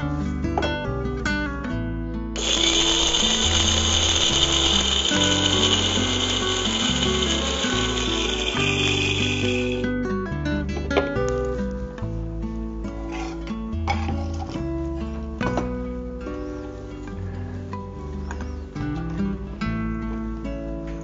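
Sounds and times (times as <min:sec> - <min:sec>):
electric mixer grinder running: 0:02.4 - 0:09.9.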